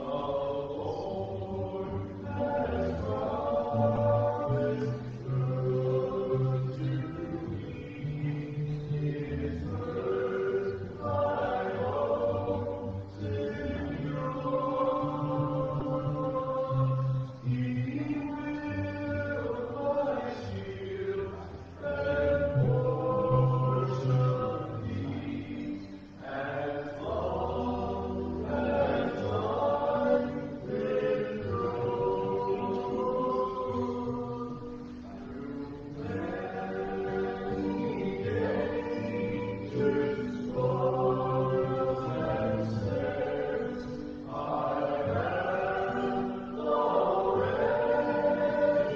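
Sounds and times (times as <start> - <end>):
slow sacred singing: 0.0 - 48.9.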